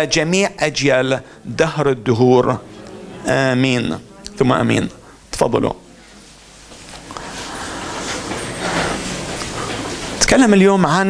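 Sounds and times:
congregation shuffling and rustling: 0.0 - 11.0.

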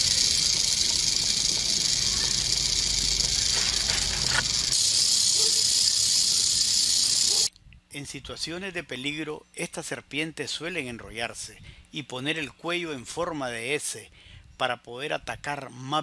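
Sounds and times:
rattlesnake rattling: 0.0 - 7.5.

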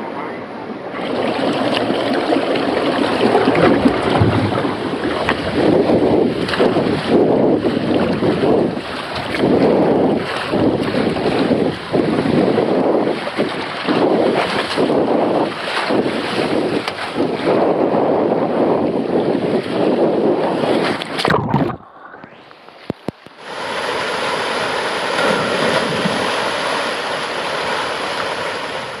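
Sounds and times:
rider sliding down water slide: 0.9 - 17.7, 23.6 - 29.0
water pouring into pool: 1.0 - 5.5, 21.1 - 22.2.

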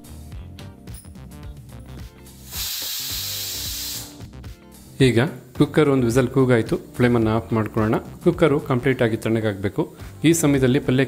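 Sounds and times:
background music: 0.0 - 11.0
pressure cooker steam hiss: 2.3 - 4.3.

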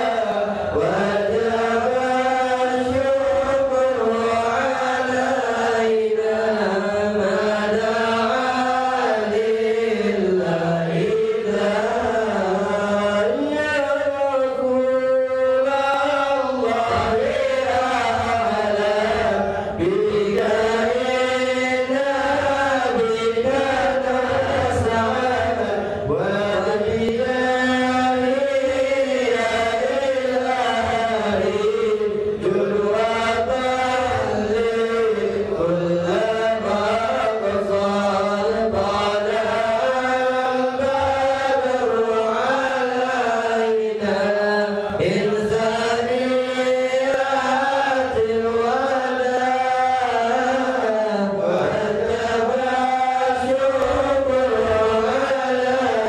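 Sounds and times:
men chanting: 0.0 - 56.0.

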